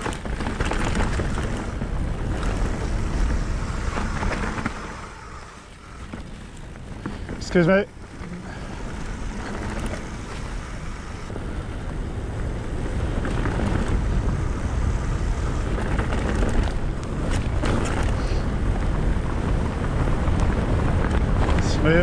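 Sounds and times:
bike knocks and rattles: 0:00.0 - 0:22.0
bike tyres rumbling over grass: 0:00.0 - 0:22.0
wind buffeting microphone: 0:00.0 - 0:22.0.

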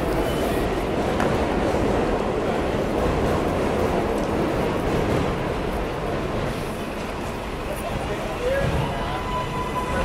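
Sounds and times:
train running: 0:00.0 - 0:10.0.

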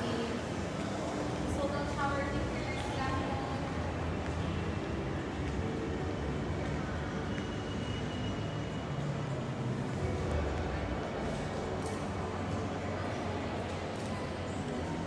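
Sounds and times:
indistinct voices of passers-by: 0:00.0 - 0:15.0.

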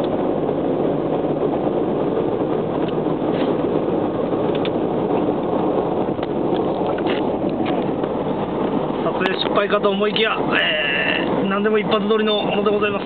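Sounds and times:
car engine: 0:00.0 - 0:13.0
road and wind noise in car: 0:00.0 - 0:13.0.

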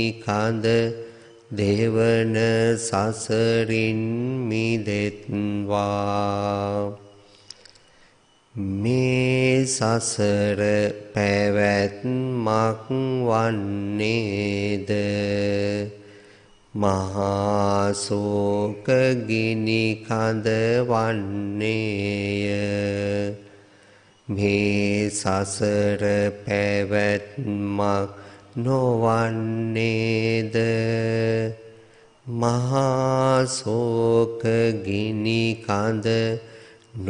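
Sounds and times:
man chanting: 0:00.0 - 0:07.4, 0:08.5 - 0:16.1, 0:16.7 - 0:23.6, 0:24.2 - 0:37.0.

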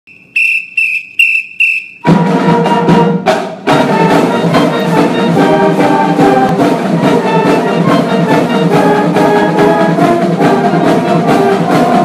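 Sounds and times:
whistle blasts: 0:00.1 - 0:02.2.

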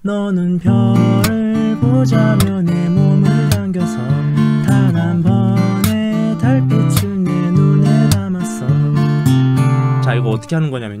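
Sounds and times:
acoustic guitar strumming: 0:00.6 - 0:10.7
percussive slaps on guitar strings: 0:05.8 - 0:06.1, 0:07.0 - 0:07.2.

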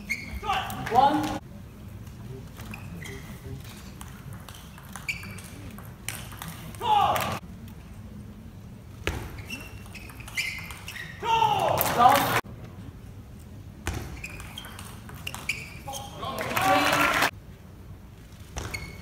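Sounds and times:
table tennis ball pinging: 0:04.0 - 0:06.6, 0:13.9 - 0:15.8
person shouting: 0:06.8 - 0:07.4, 0:11.2 - 0:12.3.

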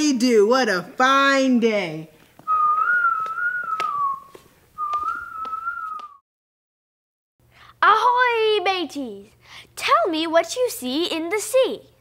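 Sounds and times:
person whistling a tune: 0:02.5 - 0:06.2.

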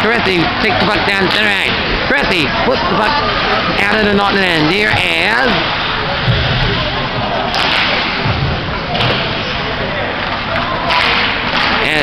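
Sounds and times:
hockey sticks and puck knocks: 0:07.5 - 0:09.5, 0:10.2 - 0:11.9.

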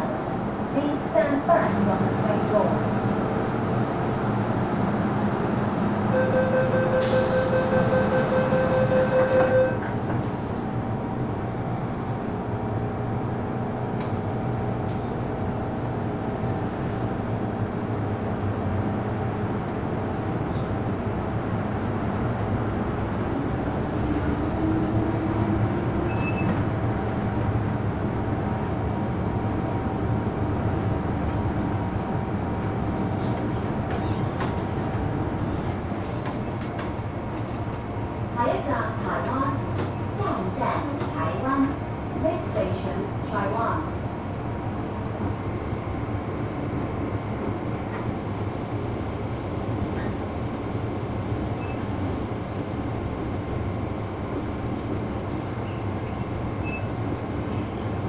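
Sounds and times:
train rumbling: 0:00.0 - 0:58.0
door-closing warning beeps: 0:06.2 - 0:09.8, 0:26.1 - 0:26.6, 0:51.6 - 0:51.8, 0:56.6 - 0:56.9.

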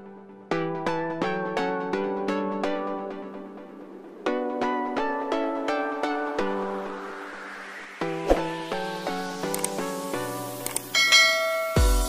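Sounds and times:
bright bell-like chime: 0:10.9 - 0:12.0
deep electronic bass beat: 0:11.8 - 0:12.0.

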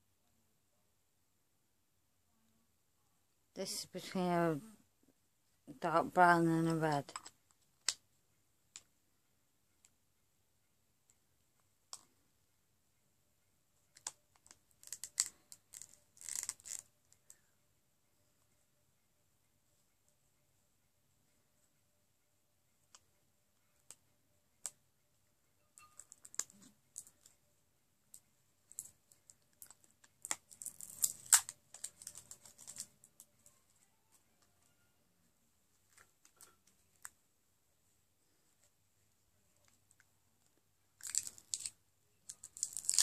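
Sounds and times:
plastic tubes and caps clicking: 0:13.9 - 0:17.3, 0:41.0 - 0:43.0.

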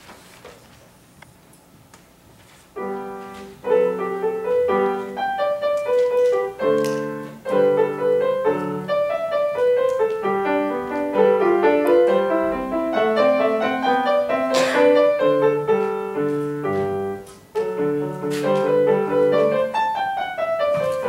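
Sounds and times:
solo grand piano: 0:02.7 - 0:21.0.

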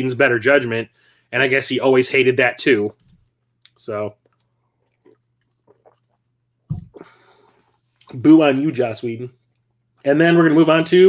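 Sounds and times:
person speaking: 0:10.0 - 0:11.0.

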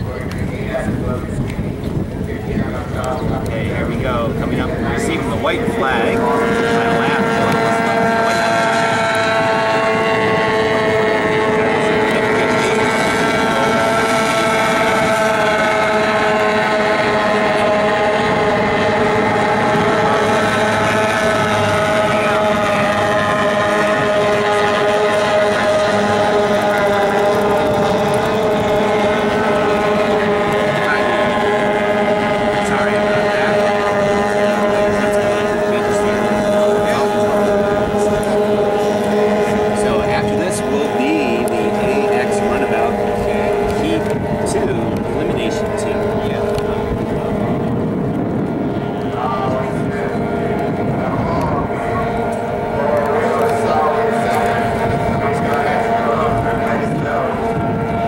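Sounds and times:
racing boat engines whining: 0:00.0 - 0:58.0.

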